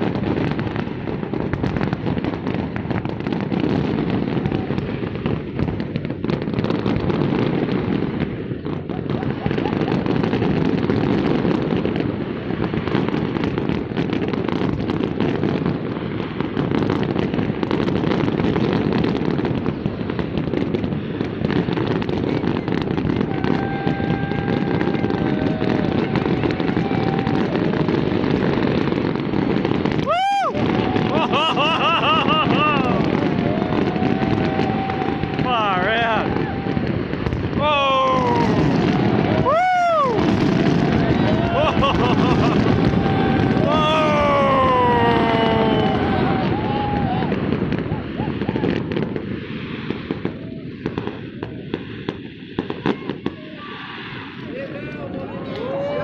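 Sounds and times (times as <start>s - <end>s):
fireworks bursts and crackle: 0.0s - 56.0s
crowd voices: 22.1s - 49.2s, 52.6s - 56.0s.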